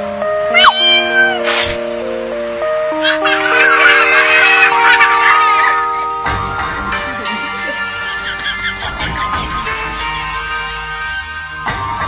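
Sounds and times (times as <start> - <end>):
background music with held chords: 0.0 - 12.0
kitten meowing: 0.5 - 1.8.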